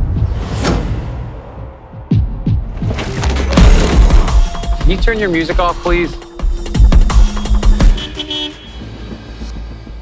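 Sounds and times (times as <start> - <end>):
car horn toot: 7.8 - 8.8.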